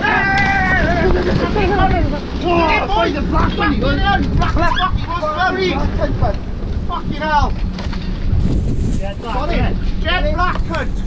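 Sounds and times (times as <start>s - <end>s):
diesel engine rumbling: 0.0s - 11.0s
wind on microphone: 0.0s - 11.0s.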